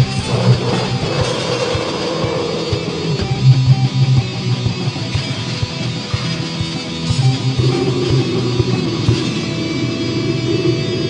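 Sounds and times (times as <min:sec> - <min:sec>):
distorted electric guitars: 0:00.0 - 0:11.0
drums playing: 0:00.0 - 0:11.0
held wavering guitar note: 0:00.0 - 0:11.0.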